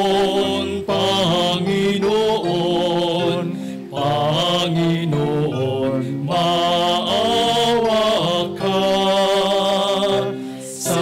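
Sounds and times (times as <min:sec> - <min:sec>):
cantors singing a chant: 0:00.0 - 0:11.0
sustained keyboard accompaniment: 0:00.0 - 0:11.0.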